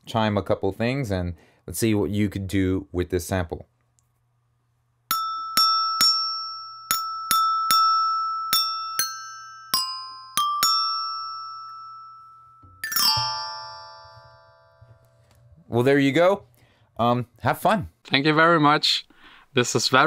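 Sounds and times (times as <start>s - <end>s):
glockenspiel sweep: 5.1s - 15.0s
glockenspiel notes ringing: 5.1s - 15.3s.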